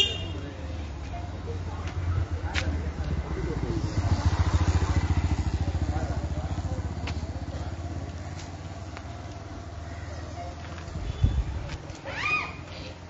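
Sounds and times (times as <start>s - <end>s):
motorcycle engine passing by: 2.0s - 10.4s.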